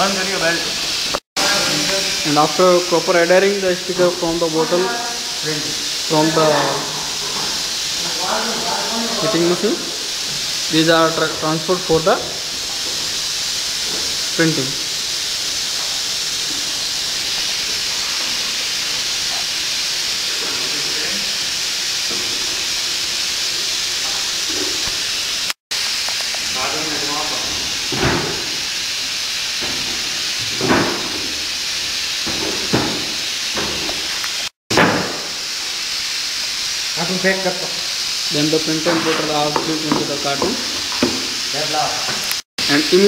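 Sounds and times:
machinery hissing: 0:00.0 - 0:43.0.

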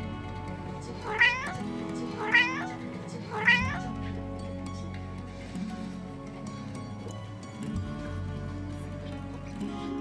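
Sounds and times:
background music: 0:00.0 - 0:10.0
cat meowing: 0:01.0 - 0:04.2.

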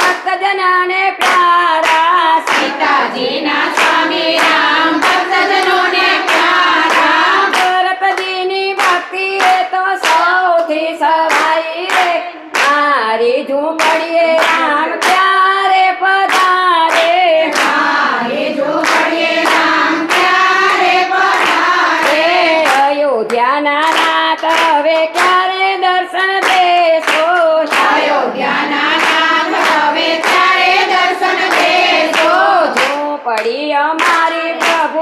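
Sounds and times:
hand clapping: 0:00.0 - 0:13.2, 0:13.8 - 0:35.0
women singing together: 0:00.0 - 0:35.0.

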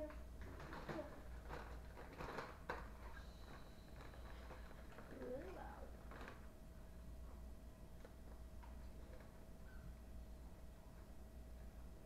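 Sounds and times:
chip bag crinkling: 0:00.5 - 0:06.6.

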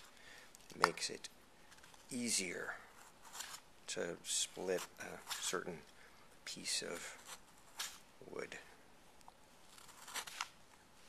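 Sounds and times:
knife cutting wood: 0:09.7 - 0:10.5.

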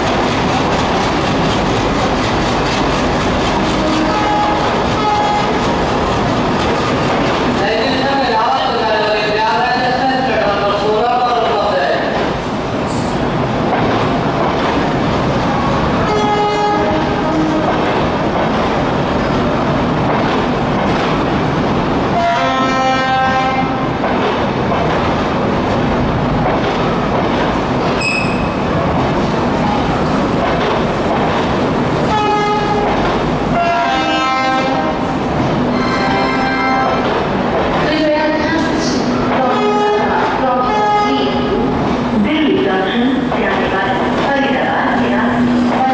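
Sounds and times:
train coaches rumbling on rails: 0:00.0 - 0:45.9
train horn blasts: 0:03.7 - 0:05.5, 0:16.0 - 0:17.7, 0:22.2 - 0:23.8, 0:32.1 - 0:32.8, 0:33.5 - 0:35.0, 0:35.7 - 0:37.0, 0:39.5 - 0:41.3.

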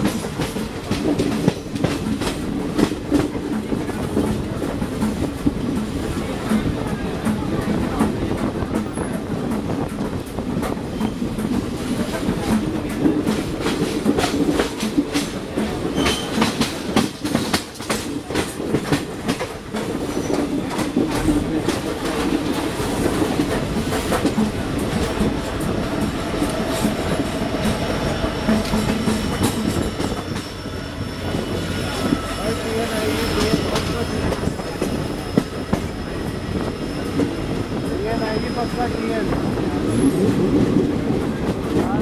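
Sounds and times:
rumble of wheels on rail: 0:00.0 - 0:42.0
train wheels clacking over rail joints: 0:00.0 - 0:42.0.

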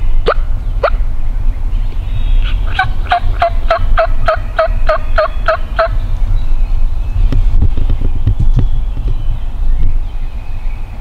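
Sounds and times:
turkey yelping: 0:02.4 - 0:06.0.

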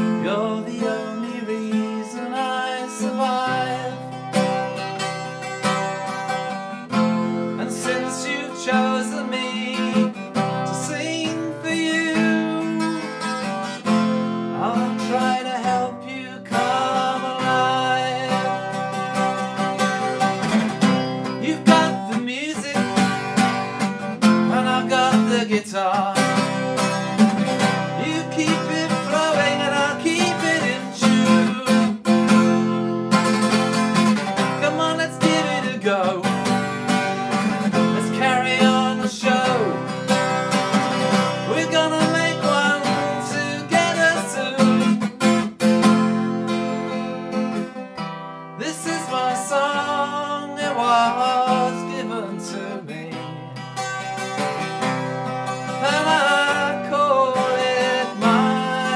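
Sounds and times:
man singing: 0:00.0 - 0:45.9, 0:48.6 - 0:53.8, 0:55.4 - 0:58.9
acoustic guitar strumming: 0:00.0 - 0:58.9.

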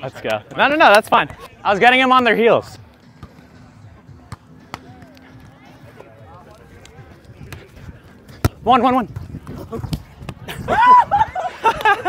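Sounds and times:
faint distant voices: 0:03.2 - 0:08.7.

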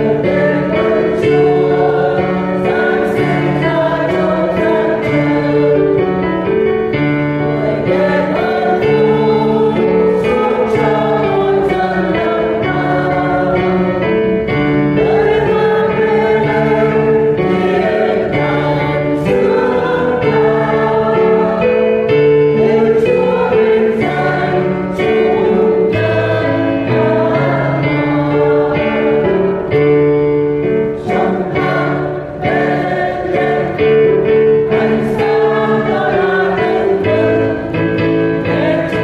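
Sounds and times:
choir singing a hymn: 0:00.0 - 0:39.0.

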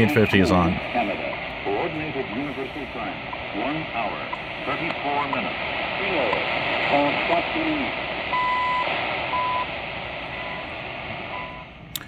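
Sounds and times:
shortwave radio static: 0:00.0 - 0:11.9.

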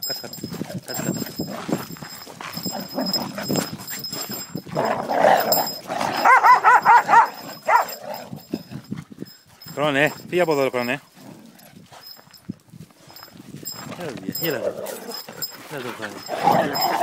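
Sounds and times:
dogs jostling: 0:00.0 - 0:17.0
dog yipping: 0:06.2 - 0:08.0.

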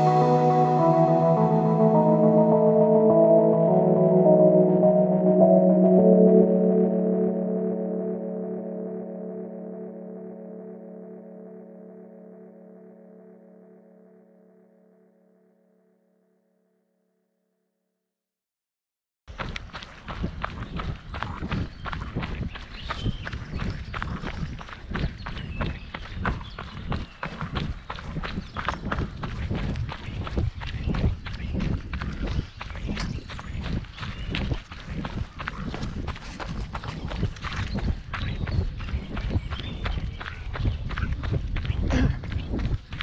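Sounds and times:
running footsteps on dirt: 0:19.3 - 0:43.0.

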